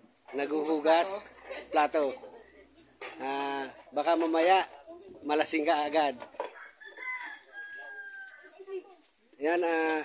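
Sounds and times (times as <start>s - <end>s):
rooster crowing: 6.5s - 8.7s.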